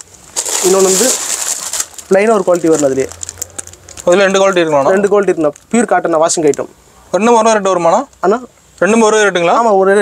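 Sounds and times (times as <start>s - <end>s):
plastic bags crinkling: 0.0s - 6.7s.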